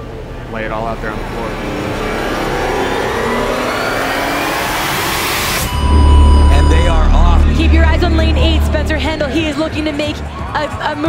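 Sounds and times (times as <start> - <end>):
rising whoosh: 0.6 - 10.6.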